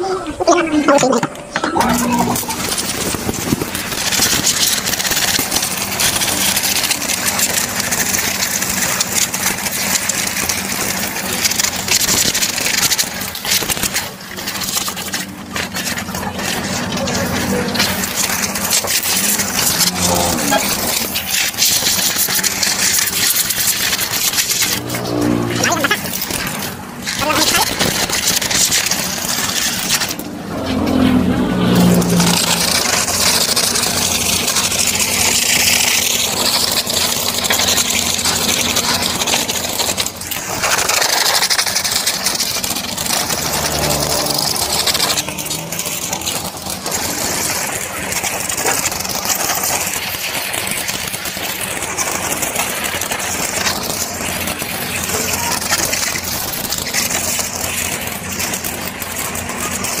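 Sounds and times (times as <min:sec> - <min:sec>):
washer motor humming: 0:00.0 - 1:00.0.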